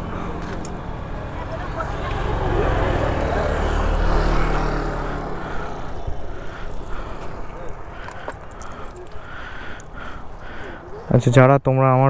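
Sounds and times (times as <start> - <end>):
motor vehicle passing: 0.0 - 11.3.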